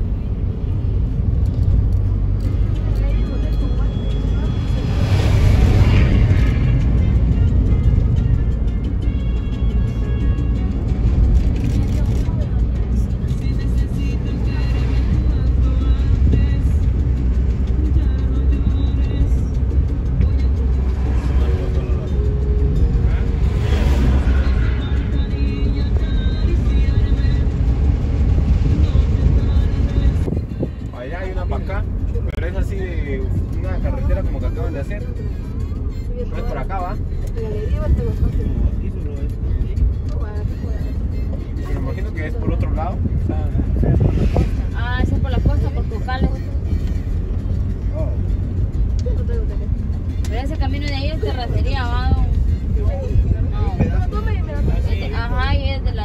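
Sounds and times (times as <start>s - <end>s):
music playing: 0.0s - 56.0s
vehicle engine and road rumble: 0.0s - 56.0s.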